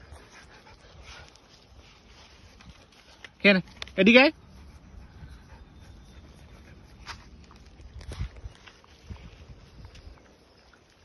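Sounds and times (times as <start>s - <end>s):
dog panting: 0.0s - 1.8s, 4.2s - 7.4s.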